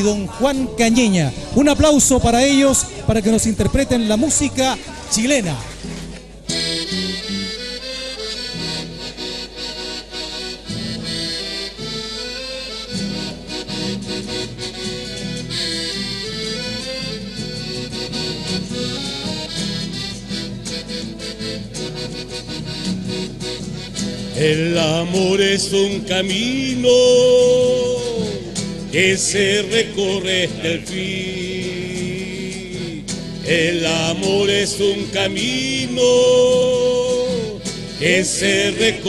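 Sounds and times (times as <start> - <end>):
accordion melody: 0.0 - 39.0
strummed acoustic guitars: 0.0 - 39.0.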